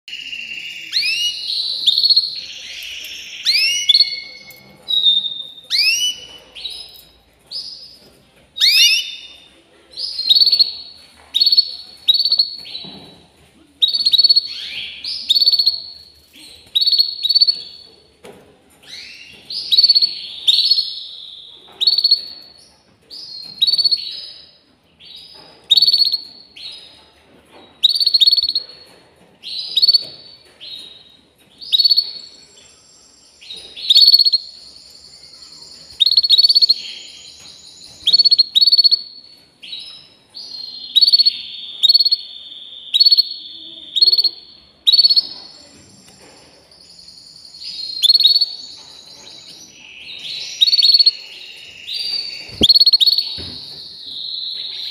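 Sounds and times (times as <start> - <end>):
canary singing: 0.0 - 13.2, 13.8 - 18.0, 18.8 - 27.0, 27.8 - 54.9.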